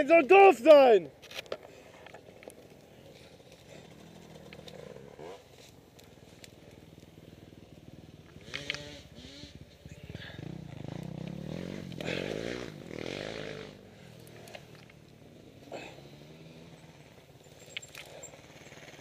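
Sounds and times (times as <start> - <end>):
engine revving: 3.2 - 5.7, 7.9 - 19.0.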